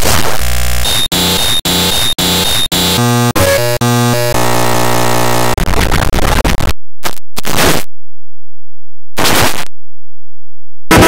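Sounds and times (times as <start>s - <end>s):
steady buzz: 0.0s - 5.6s
chopped pitched tones: 0.0s - 7.8s
harsh noise: 0.0s - 7.9s, 9.2s - 9.7s
stuttering loop with high whistle: 0.8s - 3.6s.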